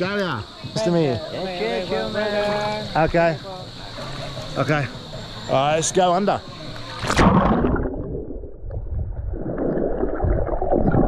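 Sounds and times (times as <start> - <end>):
splash into water: 6.9 - 11.0
underwater rushing water and bubbles: 7.0 - 11.0.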